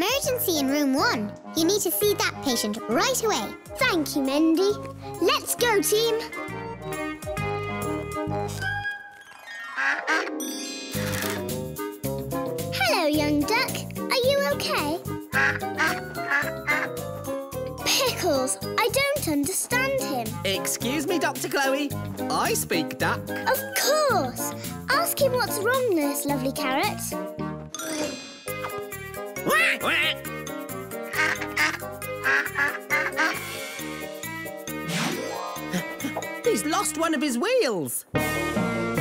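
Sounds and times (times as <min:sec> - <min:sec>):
soft children's music: 0:00.0 - 0:39.0
cartoon duck quacking: 0:15.3 - 0:17.0, 0:29.5 - 0:30.3, 0:31.1 - 0:33.4.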